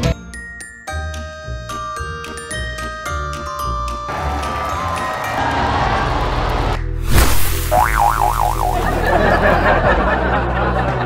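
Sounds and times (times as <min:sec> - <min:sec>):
background music: 0:00.0 - 0:11.0
cartoon boing: 0:07.7 - 0:08.9.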